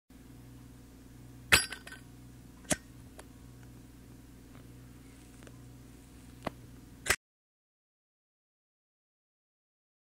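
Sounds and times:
low hum: 0:00.1 - 0:07.2.

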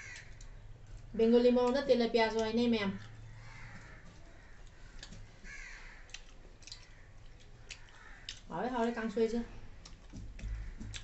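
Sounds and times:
faint clicks from eating: 0:03.8 - 0:05.3, 0:06.1 - 0:09.0, 0:09.8 - 0:11.0.

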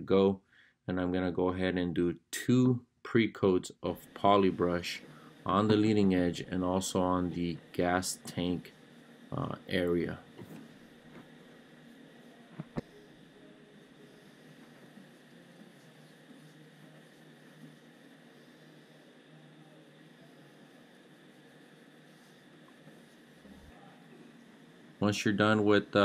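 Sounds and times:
quiet room noise: 0:00.0 - 0:26.0
paintbrush strokes: 0:13.9 - 0:19.2.

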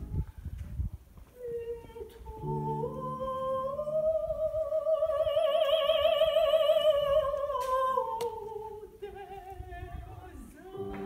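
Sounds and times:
soprano singing operatic aria: 0:01.3 - 0:11.0.

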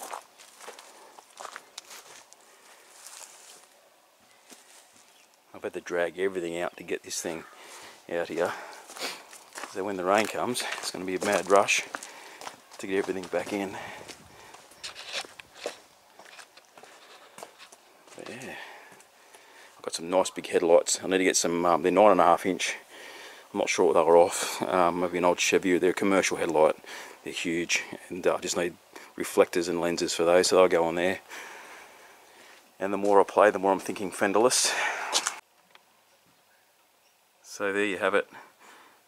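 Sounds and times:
footsteps on brick pavers: 0:00.0 - 0:03.7, 0:07.7 - 0:19.5, 0:34.9 - 0:35.4.

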